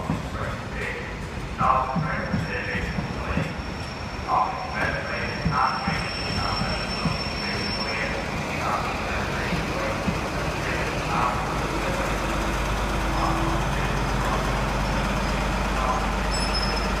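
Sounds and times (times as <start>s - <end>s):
diesel train engine rumbling: 0.0s - 17.0s.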